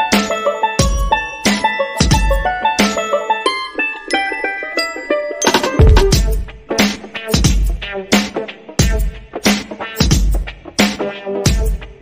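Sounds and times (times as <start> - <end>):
light plucked melody: 0.0 - 6.8.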